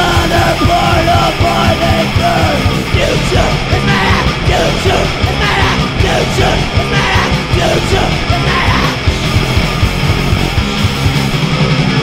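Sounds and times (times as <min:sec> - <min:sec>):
vocalist yelling: 0:00.0 - 0:09.1
fast drumbeat: 0:00.0 - 0:12.0
punk metal song: 0:00.0 - 0:12.0.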